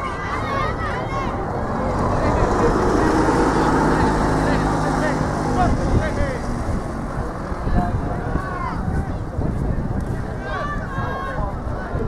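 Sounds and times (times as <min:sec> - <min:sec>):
distant voices: 0:00.0 - 0:12.0
wind buffeting microphone: 0:00.0 - 0:12.0.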